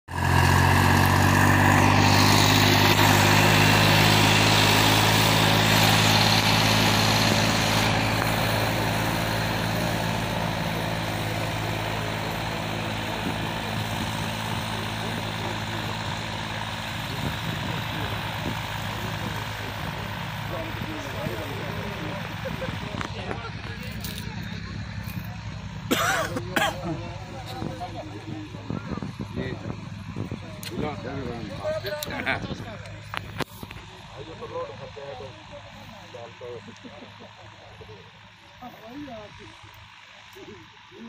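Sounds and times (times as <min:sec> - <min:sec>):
tractor diesel engine running: 0:00.1 - 0:41.0.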